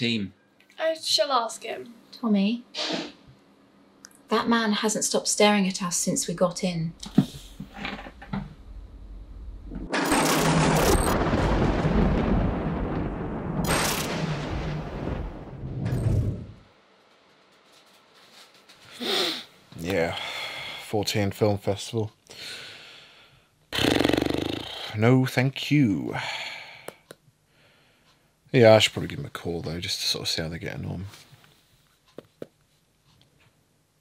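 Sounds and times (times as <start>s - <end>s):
thunder-like boom rumbling: 9.2s - 16.7s
man snoring: 23.8s - 25.0s.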